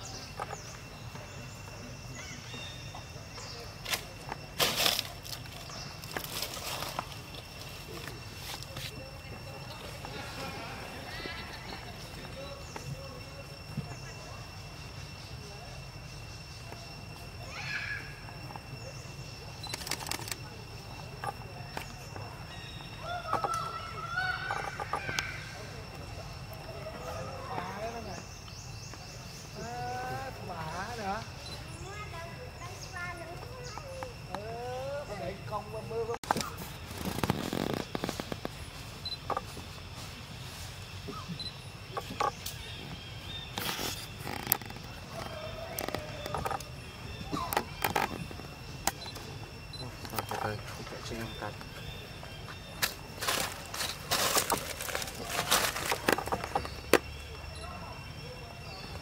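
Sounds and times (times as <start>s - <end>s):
faint squeaky monkey calls: 16.9s - 19.8s.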